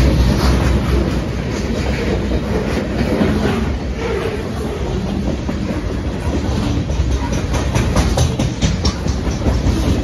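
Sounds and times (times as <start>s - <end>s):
freight train rumbling past: 0.0s - 10.0s.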